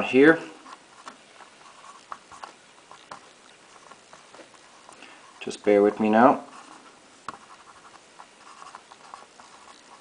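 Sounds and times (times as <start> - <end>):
marker scratching on whiteboard: 0.0 - 5.7, 6.4 - 10.0.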